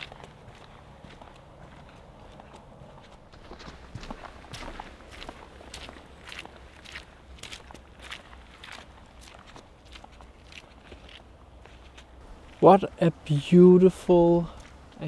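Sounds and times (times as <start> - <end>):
footsteps on muddy dirt path: 0.0 - 15.0.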